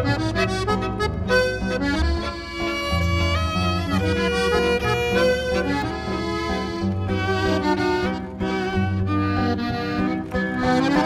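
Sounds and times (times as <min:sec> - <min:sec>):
button accordion melody: 0:00.0 - 0:11.0
guitar bass notes and chords: 0:00.0 - 0:11.0.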